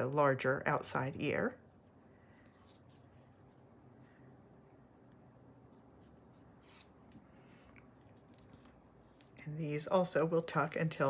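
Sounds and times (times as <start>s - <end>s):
fabric rustling: 1.7s - 9.6s.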